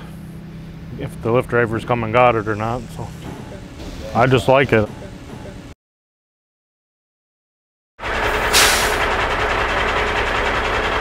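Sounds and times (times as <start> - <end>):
loud steady machine noise: 0.0 - 5.8, 8.0 - 11.0
sharp hiss: 8.5 - 9.0.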